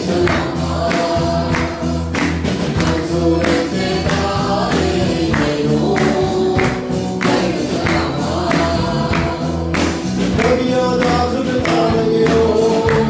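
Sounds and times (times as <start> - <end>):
steady percussion beat: 0.0 - 13.0
voices singing over instruments: 0.0 - 13.0.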